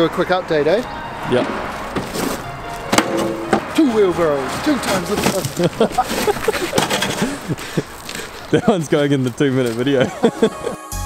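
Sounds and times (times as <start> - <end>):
wheelbarrows knocking: 1.2 - 10.6
loud metal clank: 1.3 - 7.4.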